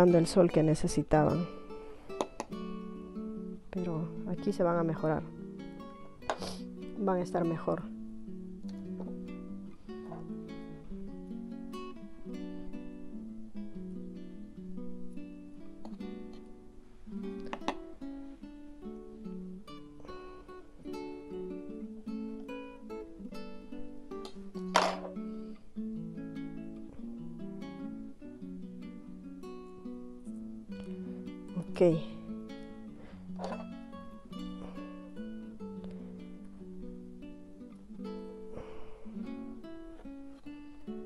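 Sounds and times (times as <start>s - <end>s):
plucked acoustic guitar melody: 0.0s - 41.0s.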